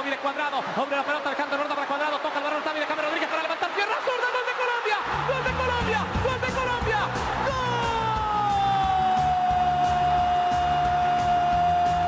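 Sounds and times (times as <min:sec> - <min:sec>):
man commentating: 0:00.0 - 0:10.1
stadium crowd noise: 0:00.0 - 0:12.0.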